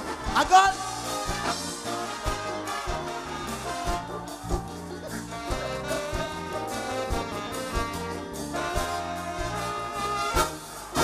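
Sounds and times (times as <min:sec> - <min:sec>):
cymbal and drum accent: 0:00.0 - 0:11.0
live band playing: 0:00.0 - 0:11.0.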